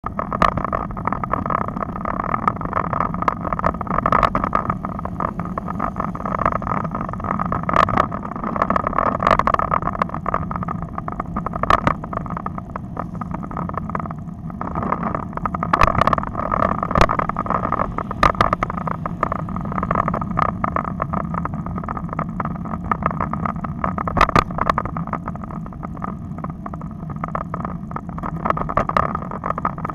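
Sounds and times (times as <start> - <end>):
bicycle clicks and rattles: 0.0 - 29.9
wind and road rumble: 0.0 - 29.9.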